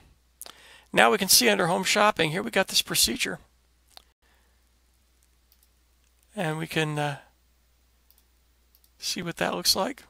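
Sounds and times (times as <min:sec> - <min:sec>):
computer mouse clicks: 0:05.5 - 0:06.2, 0:08.1 - 0:09.0.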